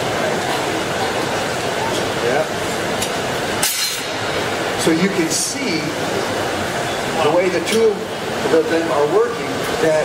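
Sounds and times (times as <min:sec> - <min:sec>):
roar of furnaces and fans: 0:00.0 - 0:10.0.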